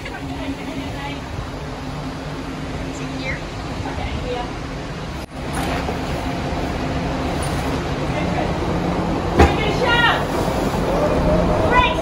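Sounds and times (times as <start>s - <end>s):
wind and sea rushing: 0.0s - 12.0s.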